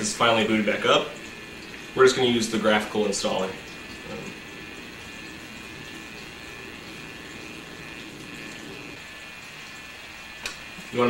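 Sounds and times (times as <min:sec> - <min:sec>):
even hiss: 0:00.0 - 0:11.0
low hum: 0:00.0 - 0:11.0.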